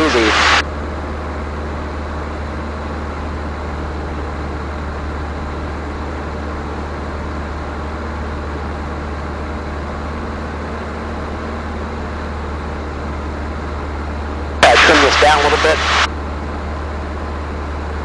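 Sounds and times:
light aircraft engine hum: 0:00.0 - 0:18.0
airflow noise: 0:14.6 - 0:16.1.

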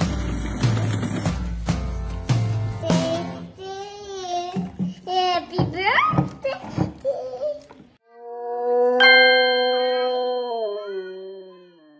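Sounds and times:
bell-like ding: 0:09.0 - 0:11.9.

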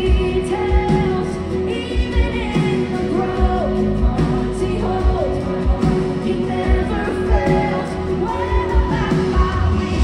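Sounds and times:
live worship band playing: 0:00.0 - 0:10.0.

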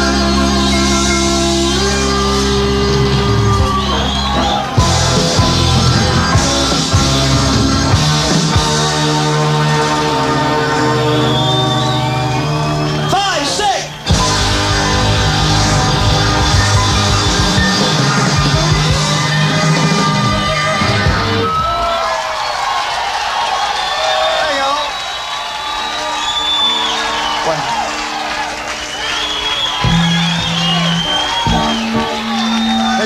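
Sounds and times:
live rock band playing: 0:00.0 - 0:21.8, 0:25.8 - 0:33.0
audience cheering and whistling: 0:00.1 - 0:33.0
held notes from stage: 0:24.2 - 0:33.0.

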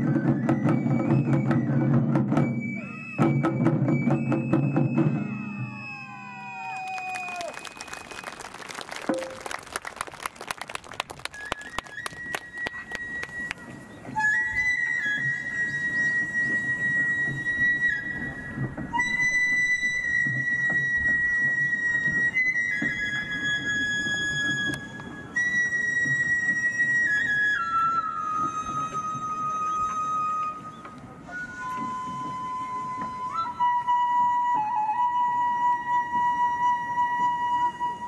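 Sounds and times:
taiko drums: 0:00.0 - 0:05.7
bamboo flute high notes: 0:00.0 - 0:08.4, 0:09.1 - 0:09.6, 0:11.2 - 0:38.0.

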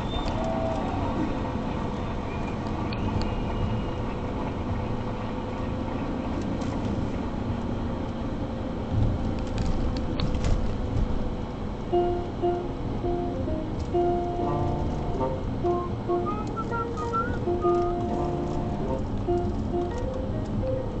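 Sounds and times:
car road and engine noise: 0:00.0 - 0:21.0
low bumps: 0:08.8 - 0:11.7.

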